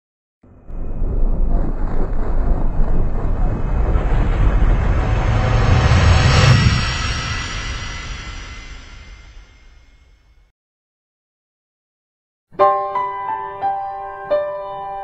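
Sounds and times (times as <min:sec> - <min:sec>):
passing vehicle rumbling: 0:00.5 - 0:08.2.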